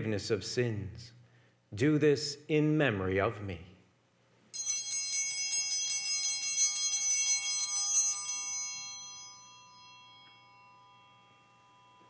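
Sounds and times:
altar bells ringing: 4.5 - 12.0.

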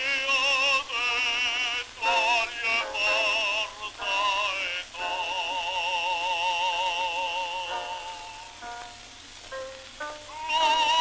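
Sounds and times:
bass voice singing operatically: 0.0 - 9.0, 10.2 - 11.0
record surface noise hiss: 0.0 - 11.0.

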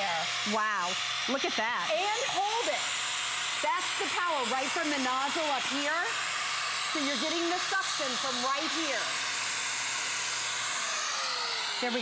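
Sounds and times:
vacuum cleaner running: 0.0 - 12.0.

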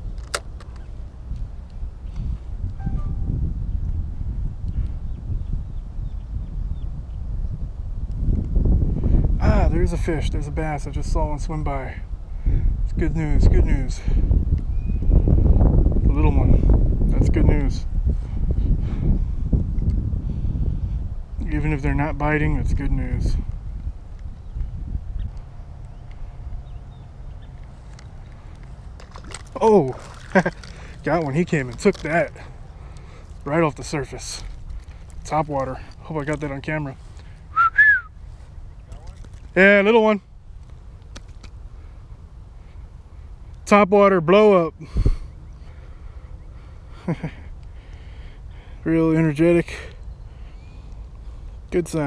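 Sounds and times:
wind buffeting microphone: 0.0 - 43.6, 44.8 - 52.0.

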